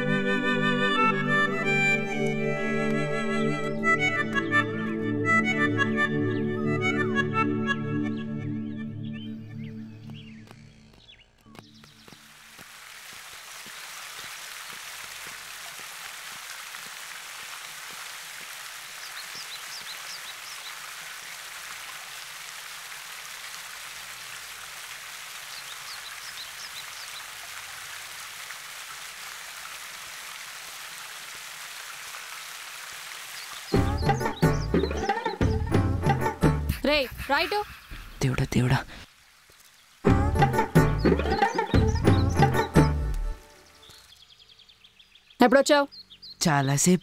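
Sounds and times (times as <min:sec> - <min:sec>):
music: 0:00.0 - 0:10.4, 0:33.8 - 0:37.1, 0:40.1 - 0:43.7
fountain water splashing: 0:11.6 - 0:35.3.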